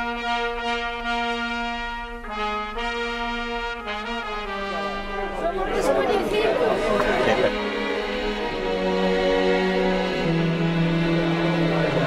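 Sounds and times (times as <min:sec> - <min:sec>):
people talking over one another: 0:04.6 - 0:08.1.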